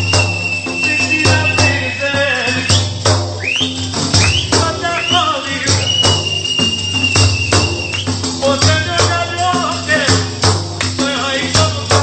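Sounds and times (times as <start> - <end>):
high melodic line: 0.0 - 3.0
frame drums with jingles: 0.0 - 12.0.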